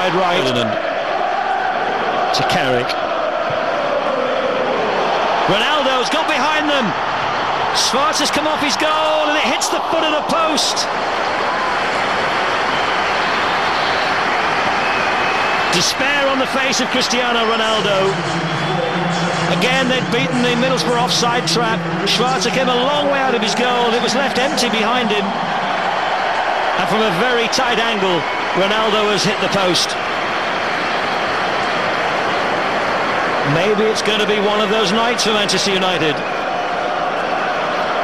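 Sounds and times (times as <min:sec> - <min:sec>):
stadium crowd roaring: 0:00.0 - 0:38.0.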